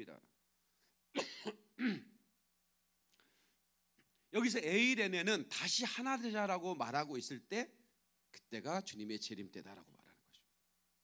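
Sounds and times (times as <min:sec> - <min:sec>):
man clearing throat coughing: 0:01.2 - 0:02.2.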